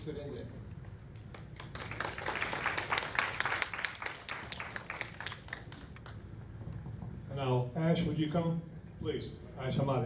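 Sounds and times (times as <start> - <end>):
audience applauding: 1.2 - 6.2.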